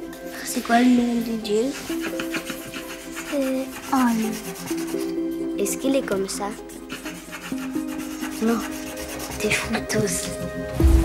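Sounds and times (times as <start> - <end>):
crayon scratching on paper: 0.2 - 10.4.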